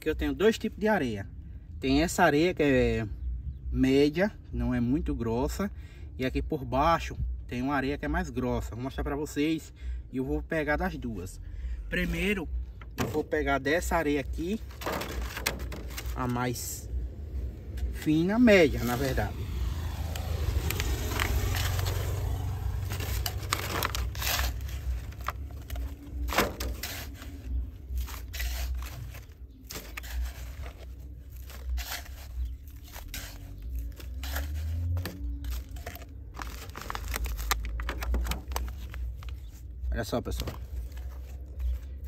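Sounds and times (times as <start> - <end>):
steady low rumble: 11.2 - 42.0
trowel scraping sand: 17.4 - 25.5, 26.2 - 36.1.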